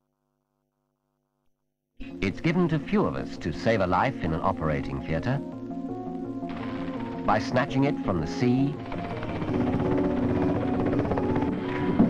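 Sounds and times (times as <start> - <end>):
background music with held notes: 2.0 - 12.0
helicopter rotor chopping: 6.0 - 12.0.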